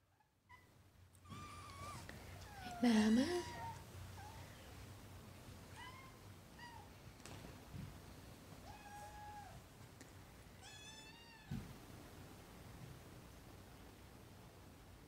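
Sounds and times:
cats meowing: 0.5s - 4.5s, 8.6s - 9.6s, 10.6s - 11.6s
soft thump: 11.5s - 11.8s.

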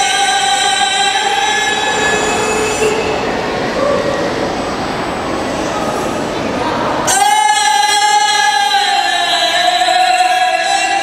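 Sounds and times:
long held sung note: 0.0s - 4.0s.

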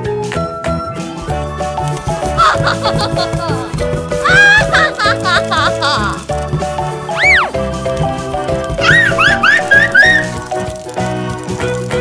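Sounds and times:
bouncy children's music: 0.0s - 12.0s
whistled glide: 7.1s - 7.6s, 8.8s - 10.5s
short cartoon chirps: 8.8s - 10.4s.

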